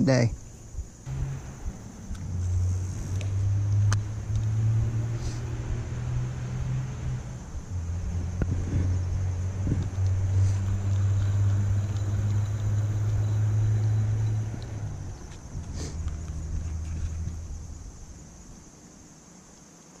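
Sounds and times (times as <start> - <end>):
vehicle engine hum: 0.4 - 19.4.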